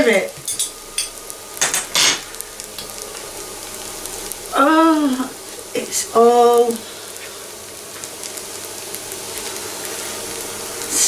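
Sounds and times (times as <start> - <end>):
butter sizzling in a saucepan: 0.0 - 11.0.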